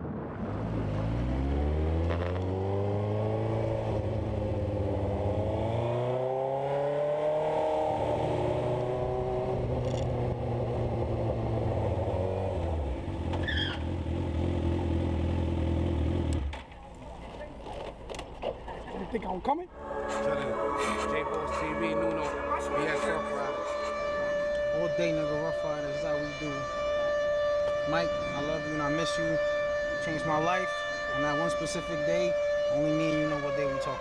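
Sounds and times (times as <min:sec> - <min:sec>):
motorcycle engine accelerating: 0:00.4 - 0:16.7, 0:19.7 - 0:33.3.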